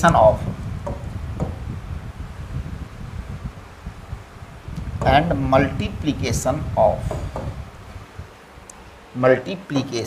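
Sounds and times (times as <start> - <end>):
low background rumble: 0.0 - 10.0.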